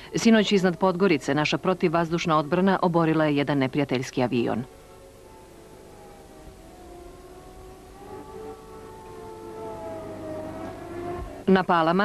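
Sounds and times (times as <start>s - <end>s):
air-raid siren wailing: 0.0s - 12.0s.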